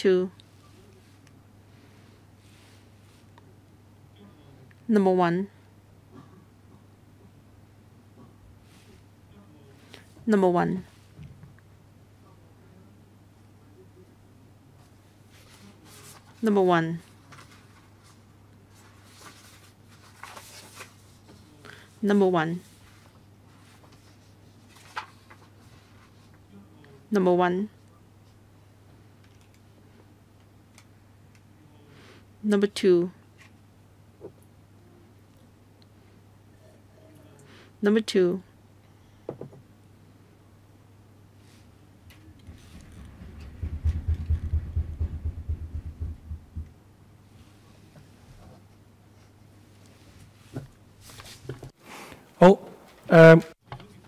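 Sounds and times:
low room hum: 0.0 - 54.0
microphone handling thumps: 42.4 - 46.8.

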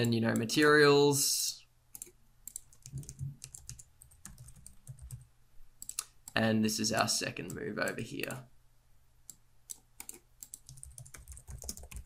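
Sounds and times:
mouse and keyboard clicking: 9.3 - 12.0.

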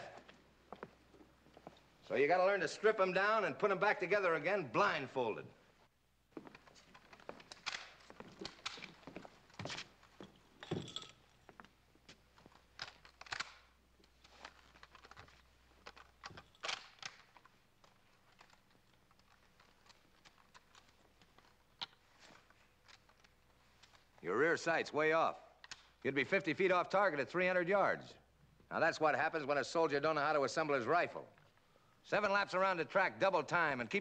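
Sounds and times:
metallic clicks of rifle parts: 6.9 - 9.0, 12.6 - 24.2, 25.6 - 26.0.

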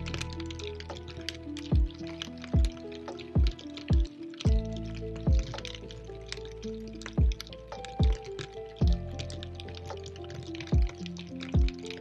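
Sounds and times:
dripping rain: 0.0 - 12.0
held synth notes: 0.0 - 12.0
deep drum beats: 1.7 - 2.0, 2.6 - 2.8, 3.4 - 5.8, 7.2 - 8.2, 8.8 - 9.1, 10.8 - 11.0, 11.6 - 11.8.

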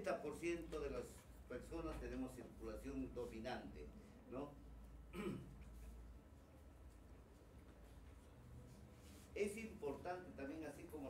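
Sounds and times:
man clearing his throat: 5.1 - 5.6.

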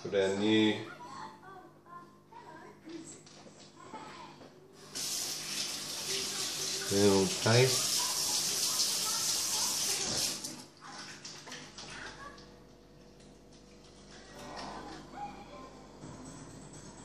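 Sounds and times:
tap water running: 4.8 - 15.0.

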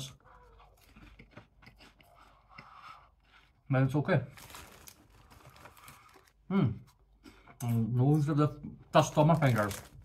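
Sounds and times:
crunching corn snacks being chewed: 0.3 - 3.5, 4.4 - 6.4
plastic bag rustling: 4.3 - 6.4, 9.0 - 10.0.

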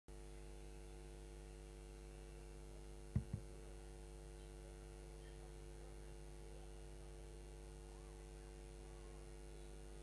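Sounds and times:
faint electrical mains hum: 0.1 - 10.0
short low thumps: 3.2 - 3.5.

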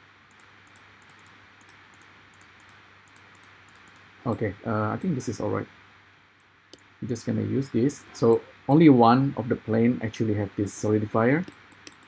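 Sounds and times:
microphone hiss: 0.0 - 12.0
faint high-pitched ticks: 0.3 - 5.2, 11.4 - 12.0.

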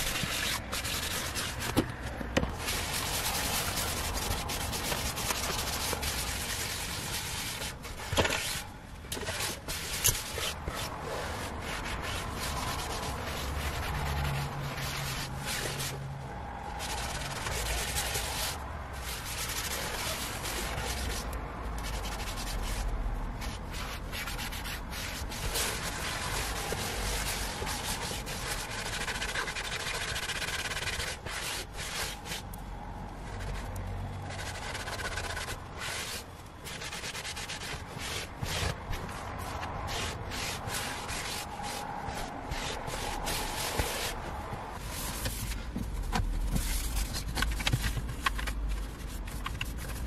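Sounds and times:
wipe rubbing leather seat: 0.0 - 1.8, 2.5 - 8.6, 9.2 - 16.0, 16.8 - 32.5, 34.3 - 45.6.

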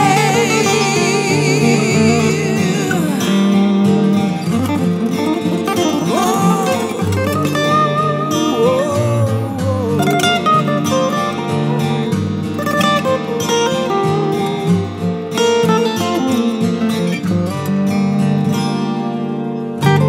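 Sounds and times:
acoustic guitars playing: 0.0 - 20.0.

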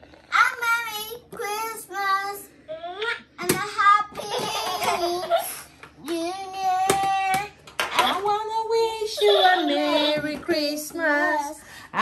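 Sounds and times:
girl singing into toy microphone: 0.3 - 12.0.

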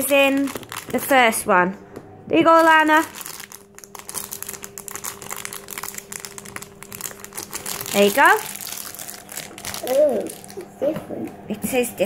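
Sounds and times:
plastic packet crinkling: 0.0 - 1.2, 2.6 - 10.7.

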